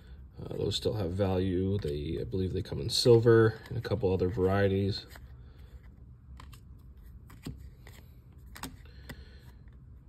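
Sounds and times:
cards sliding by hand: 3.4 - 9.8.

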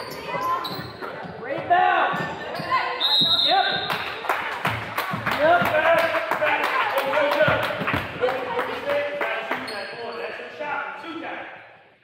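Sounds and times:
voices in echoing gym: 0.0 - 12.0.

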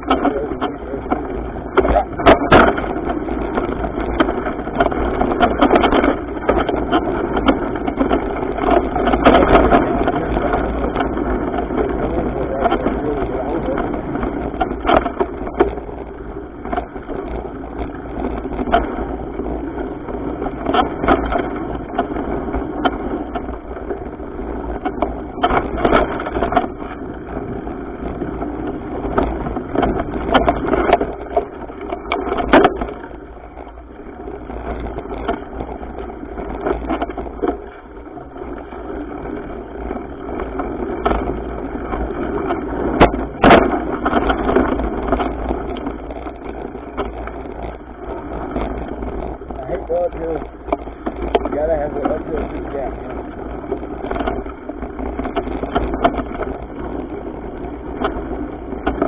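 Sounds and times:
bike rattling and knocking: 0.0 - 59.0
low rumble: 0.0 - 59.0
wind and tyre noise: 0.0 - 59.0.

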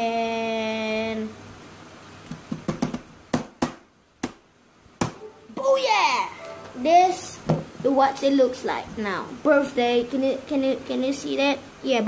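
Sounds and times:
hands tapping on tabletop: 2.3 - 4.4.

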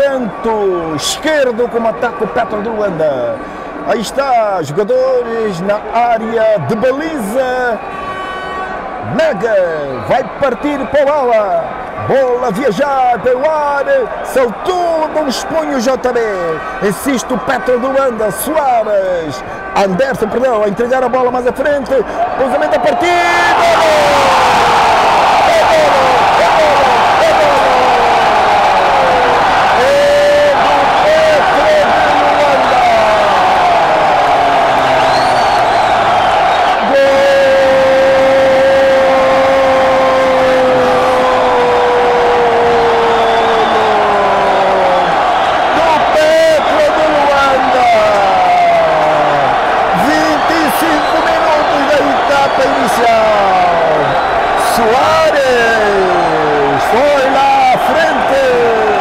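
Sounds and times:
stadium crowd noise: 0.0 - 59.0
commentator shouting: 9.0 - 35.4, 36.8 - 59.0.

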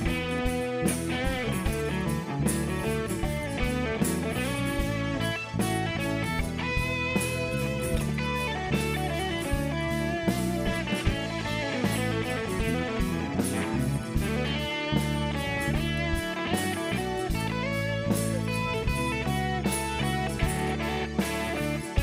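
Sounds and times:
bass guitar: 0.0 - 22.0
drums: 0.0 - 22.0
electric guitar lead: 0.0 - 22.0.

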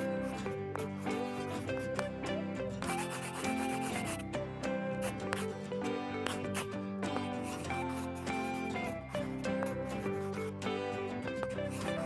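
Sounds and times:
light upbeat background music: 0.0 - 12.0
marker scratching on paper: 2.8 - 4.2, 5.0 - 5.5, 6.2 - 10.4, 11.7 - 12.0.

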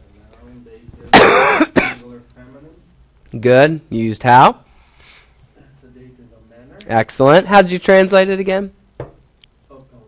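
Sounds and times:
person coughing loudly: 1.1 - 2.1.

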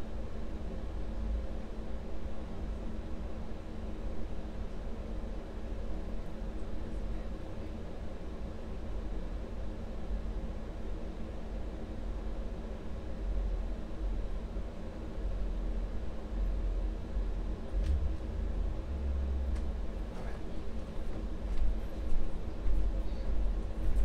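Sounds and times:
faint hum: 0.0 - 24.0
steady low rumble: 15.2 - 24.0.

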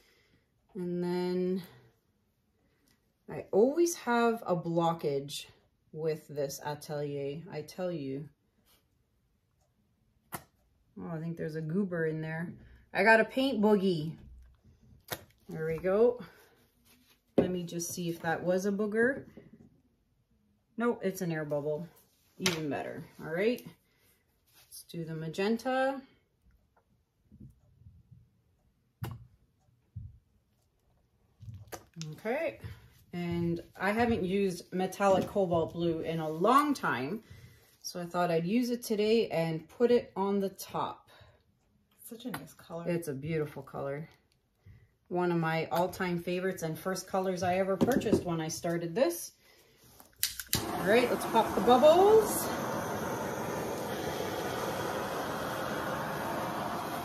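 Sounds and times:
heat gun blowing air: 50.5 - 57.0.

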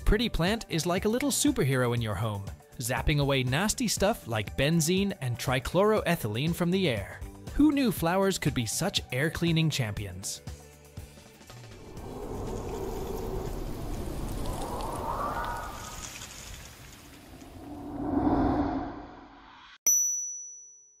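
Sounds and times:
rushing whoosh noise: 11.6 - 19.8
bright ding: 19.8 - 21.0.

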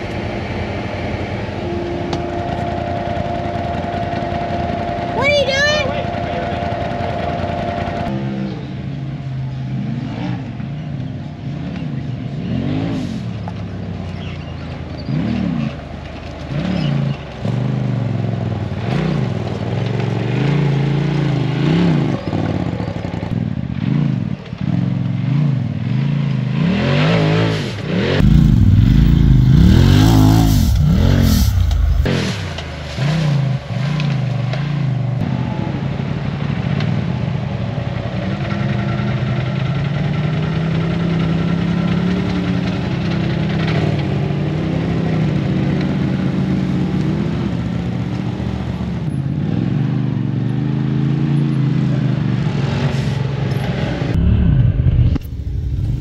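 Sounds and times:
off-road vehicle engine revving: 0.0 - 37.2, 38.0 - 56.0
loud rush of noise: 28.2 - 32.9, 54.0 - 56.0.

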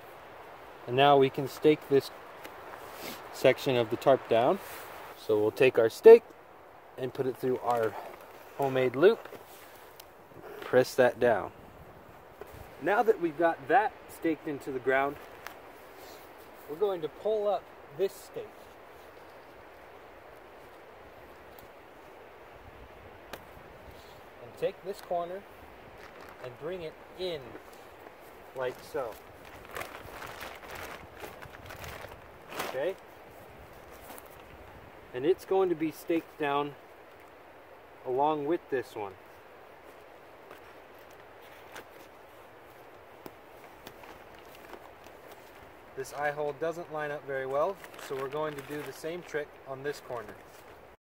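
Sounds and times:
even hiss: 0.0 - 50.6
plastic tarp rustling: 25.9 - 26.8, 28.5 - 33.1, 47.4 - 50.8.

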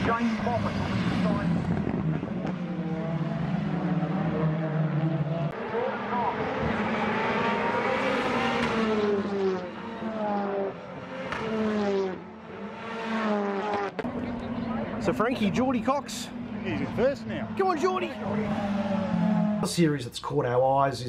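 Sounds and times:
racing car engines passing: 0.0 - 20.0.

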